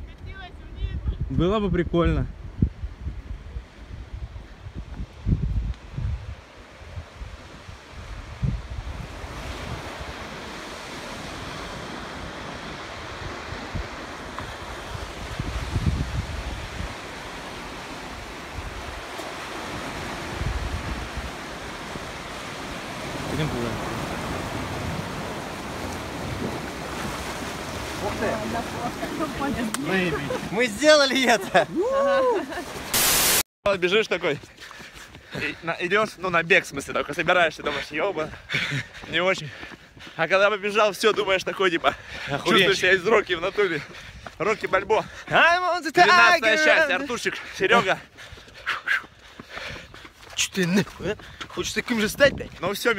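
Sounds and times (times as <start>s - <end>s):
wind gusting on microphone: 0.0s - 33.0s, 35.5s - 45.4s, 46.1s - 52.9s
sea surf breaking over rocks: 9.0s - 33.0s.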